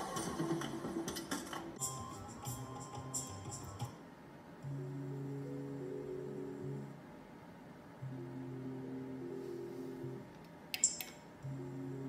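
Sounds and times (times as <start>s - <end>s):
slot machine spinning melody: 1.8s - 4.0s, 8.0s - 10.2s.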